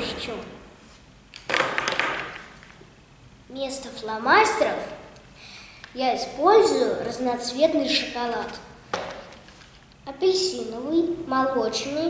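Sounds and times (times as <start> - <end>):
plastic markers clattering on table: 1.4 - 2.8, 8.9 - 9.8.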